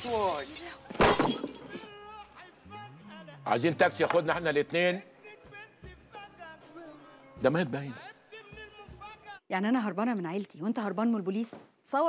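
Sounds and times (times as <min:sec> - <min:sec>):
glasses clattering: 0:00.9 - 0:01.9.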